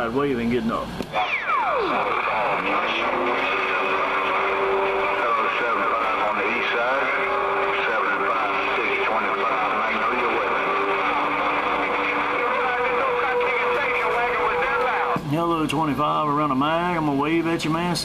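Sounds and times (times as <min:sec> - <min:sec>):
radio static hiss: 0:00.0 - 0:18.0
garbled overlapping radio voices: 0:00.8 - 0:18.0.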